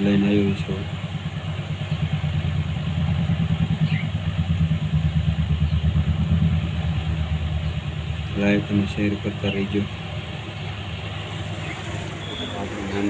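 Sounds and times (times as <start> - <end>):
motor running with low throb: 0.0 - 13.0
faint bird chirp: 3.6 - 4.3, 10.5 - 13.0.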